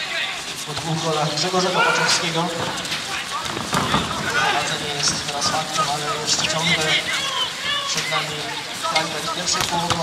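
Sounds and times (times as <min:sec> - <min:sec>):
people talking: 0:00.0 - 0:10.0
rain falling: 0:00.0 - 0:10.0.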